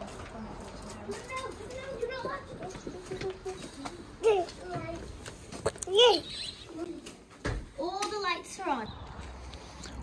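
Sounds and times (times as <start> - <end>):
children and adults talking: 0.0 - 10.0.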